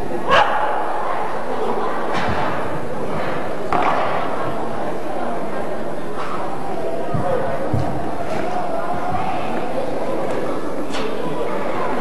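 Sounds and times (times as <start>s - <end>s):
murmur of arena noise: 0.0s - 12.0s.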